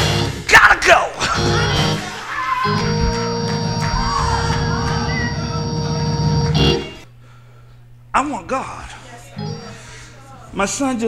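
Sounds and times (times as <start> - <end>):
live band music: 1.4 - 7.0
low steady hum: 2.9 - 11.0.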